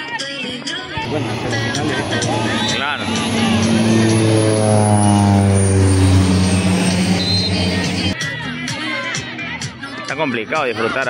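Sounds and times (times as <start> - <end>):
loud engine drone: 1.0 - 8.2.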